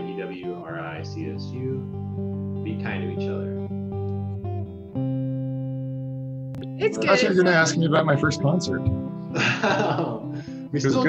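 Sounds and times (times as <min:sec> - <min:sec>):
voice: 0:00.0 - 0:01.8, 0:02.7 - 0:03.6, 0:06.8 - 0:10.2, 0:10.8 - 0:11.0
guitar chord ringing: 0:00.0 - 0:11.0.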